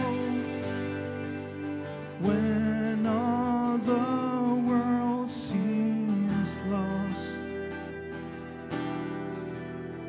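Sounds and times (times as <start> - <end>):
man singing: 0.0 - 7.9
strummed acoustic guitar: 0.0 - 10.0.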